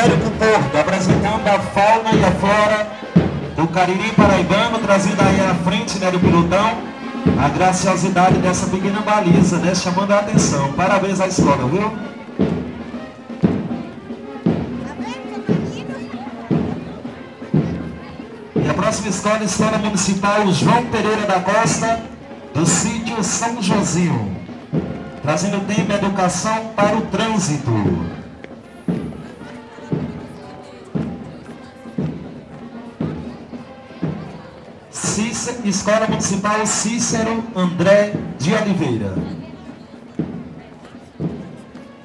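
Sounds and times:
marching bass drum beat: 0:00.0 - 0:41.9
music: 0:00.0 - 0:42.0
voices: 0:00.0 - 0:42.0.

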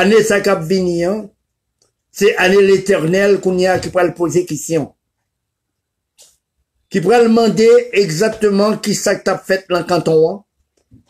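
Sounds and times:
man speaking: 0:00.0 - 0:01.4, 0:02.1 - 0:05.0, 0:06.9 - 0:10.5.

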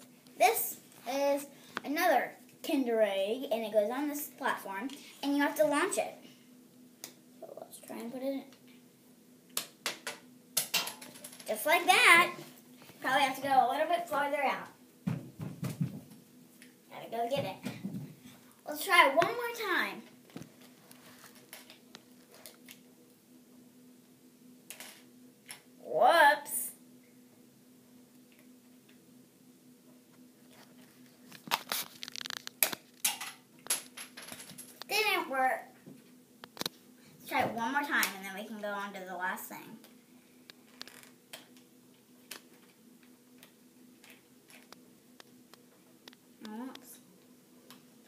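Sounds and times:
faint steady hum: 0:00.0 - 0:48.0.

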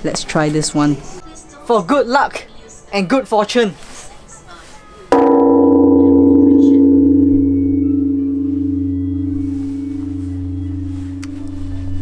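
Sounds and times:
large temple bell ringing: 0:05.2 - 0:12.0.

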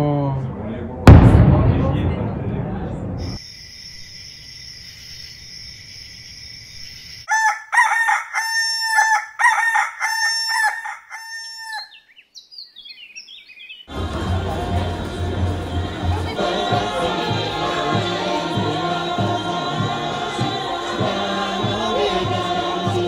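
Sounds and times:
firework burst: 0:01.1 - 0:03.4
small birds chirping: 0:03.3 - 0:07.3, 0:11.7 - 0:13.9
rooster crowing: 0:07.3 - 0:12.0.

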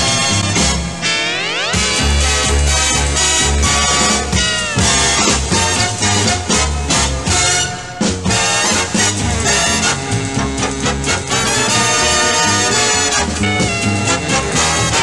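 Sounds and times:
swing jingle music with brass: 0:00.0 - 0:15.0.

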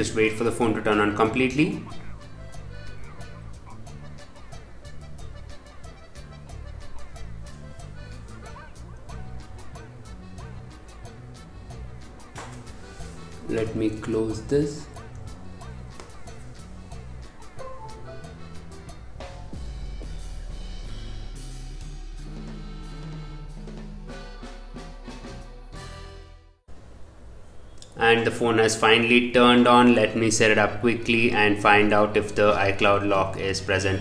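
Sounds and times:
bending lead notes: 0:00.0 - 0:26.0
background music with drums: 0:01.6 - 0:26.2
bass line: 0:01.6 - 0:26.6.

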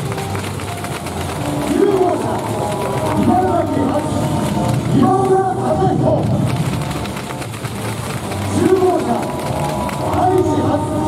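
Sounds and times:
introduction music: 0:00.0 - 0:11.0
announcer over loudspeakers: 0:01.4 - 0:06.5, 0:08.4 - 0:11.0.

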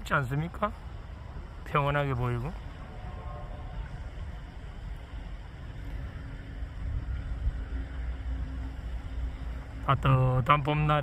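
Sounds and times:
faint steady hum: 0:00.0 - 0:11.0
low outdoor rumble: 0:00.0 - 0:11.0.

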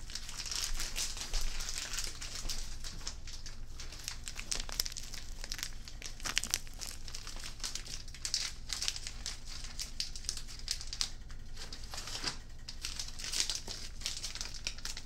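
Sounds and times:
wrapper crinkling: 0:00.0 - 0:15.0.

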